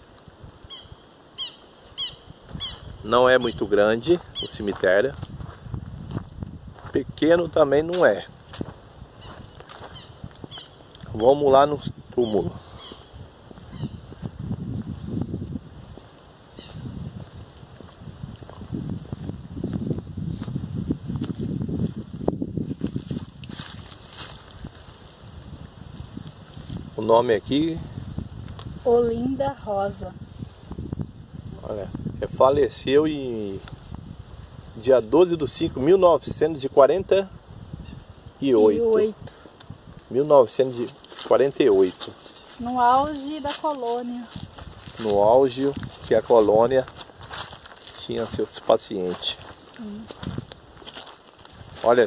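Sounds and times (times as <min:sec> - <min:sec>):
wind buffeting microphone: 0:00.0 - 0:52.0
distant bird calling harshly: 0:00.6 - 0:04.6, 0:09.2 - 0:11.4, 0:12.2 - 0:14.2, 0:16.5 - 0:16.8
footsteps through grass and leaves: 0:01.7 - 0:11.2, 0:12.6 - 0:31.5, 0:39.1 - 0:52.0
crisp rustles: 0:40.8 - 0:52.0.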